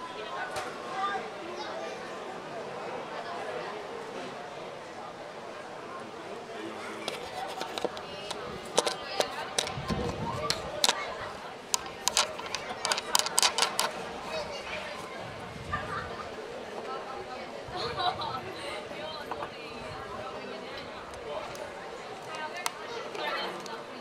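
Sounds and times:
distant voices chattering: 0.0s - 24.0s.

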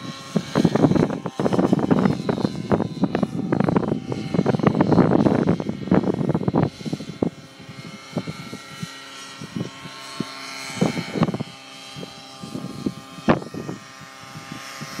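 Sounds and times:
model helicopter rotor whine: 0.0s - 15.0s.

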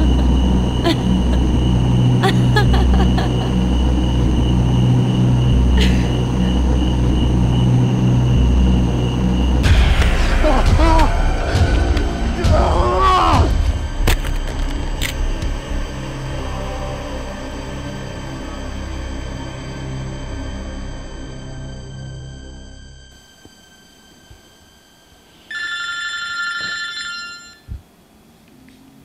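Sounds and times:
droning horror music: 0.0s - 27.2s
man screaming: 12.4s - 13.6s
electronic phone ring: 25.5s - 27.7s.

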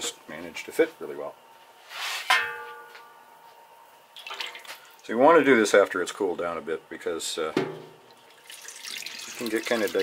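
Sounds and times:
metal cookware clang: 2.3s - 3.0s.

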